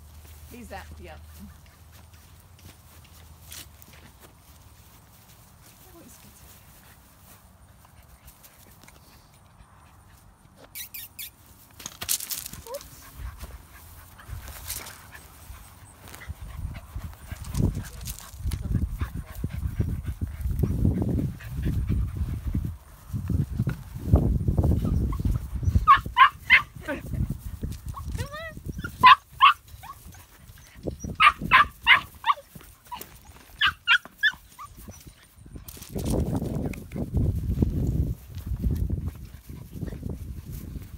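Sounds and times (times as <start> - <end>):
puppies yipping: 10.1 - 11.5, 24.7 - 27.0, 27.8 - 35.6
low rumbling and rustling: 11.4 - 33.6.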